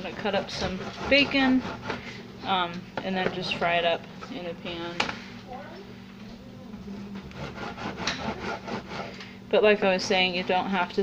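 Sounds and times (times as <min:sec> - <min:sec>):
knife sawing through bacon: 0:00.0 - 0:02.2, 0:07.3 - 0:09.2.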